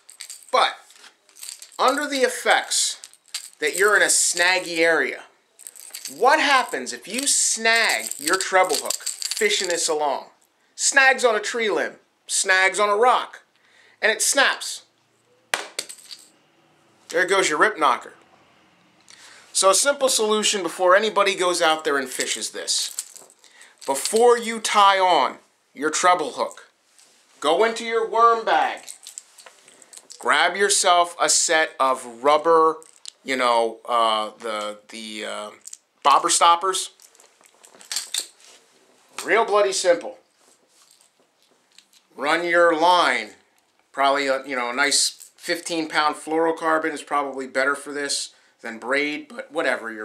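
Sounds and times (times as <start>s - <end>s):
plastic bag crinkling: 0.0s - 4.8s, 5.6s - 7.2s.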